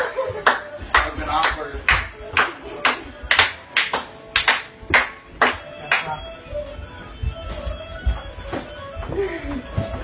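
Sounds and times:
faint dance music: 0:00.0 - 0:10.0
hands clapping in a beat: 0:00.2 - 0:06.3.

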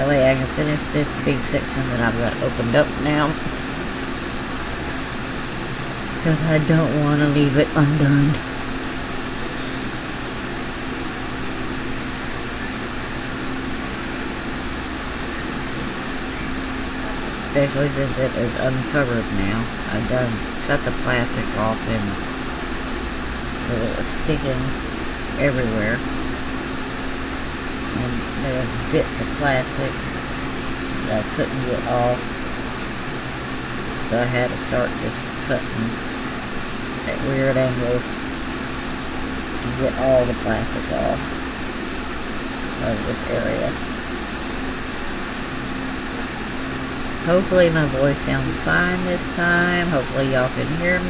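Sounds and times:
person speaking: 0:00.0 - 0:03.7, 0:06.2 - 0:08.6, 0:09.2 - 0:22.4, 0:23.6 - 0:26.0, 0:31.0 - 0:32.3, 0:47.2 - 0:51.0
cooling fan whirring: 0:00.0 - 0:51.0
low steady hum: 0:00.0 - 0:51.0.

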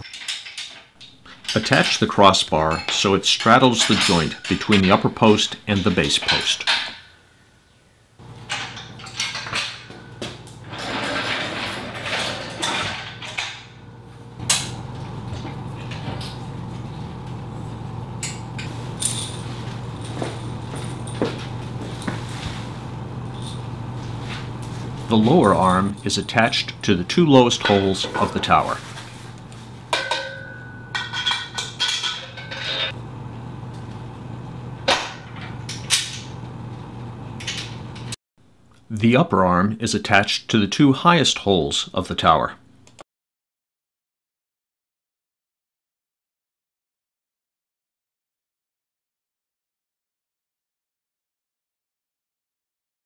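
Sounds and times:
metal scraping and rubbing: 0:00.0 - 0:06.7, 0:10.6 - 0:13.6, 0:14.4 - 0:33.0
metal tubing clanking: 0:00.0 - 0:07.1, 0:18.2 - 0:33.0
steady low hum: 0:00.1 - 0:39.2.

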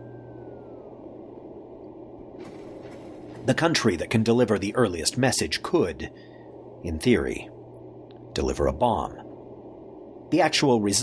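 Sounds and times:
faint high gliding tone: 0:00.0 - 0:03.6
low atmospheric drone: 0:00.0 - 0:11.0.

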